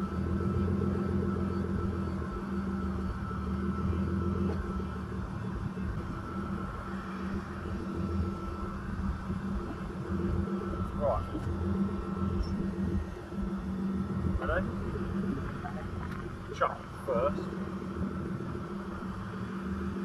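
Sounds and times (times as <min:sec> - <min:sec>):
car engine running at low revs: 0:00.0 - 0:20.0
faint high whine: 0:00.0 - 0:20.0.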